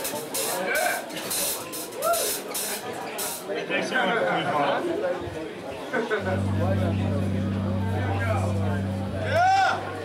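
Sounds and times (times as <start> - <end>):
club crowd voices: 6.2 - 10.0.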